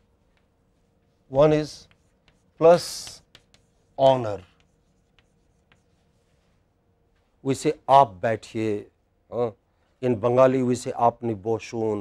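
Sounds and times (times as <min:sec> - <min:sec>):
chalk tapping on chalkboard: 0:00.0 - 0:06.6.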